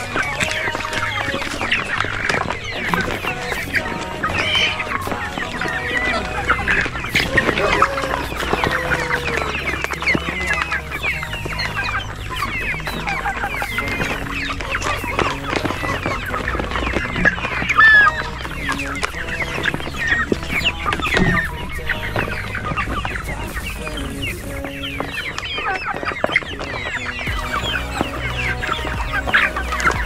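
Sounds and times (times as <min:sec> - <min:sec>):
young chickens clucking and cheeping: 0:00.0 - 0:30.0.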